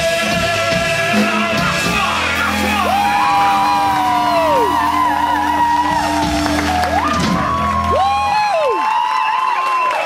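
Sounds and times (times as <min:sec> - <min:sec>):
electric guitar notes: 0:00.3 - 0:08.5
crowd cheering and whooping: 0:02.3 - 0:10.0.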